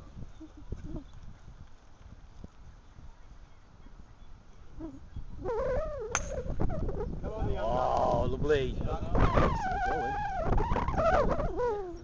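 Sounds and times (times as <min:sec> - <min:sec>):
wind noise on microphone: 0:00.0 - 0:12.0
golf club striking ball: 0:06.1 - 0:06.6.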